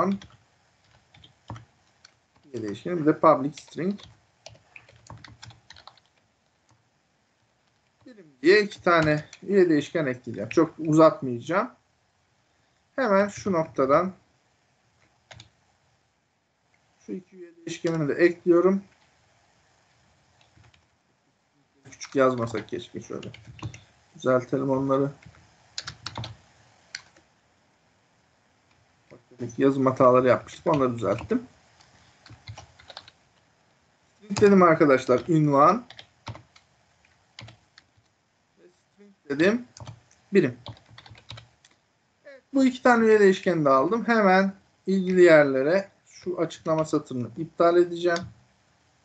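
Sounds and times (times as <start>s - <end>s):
computer keyboard keystrokes: 3.6s - 6.2s, 25.2s - 27.2s, 32.2s - 33.2s, 40.6s - 41.8s.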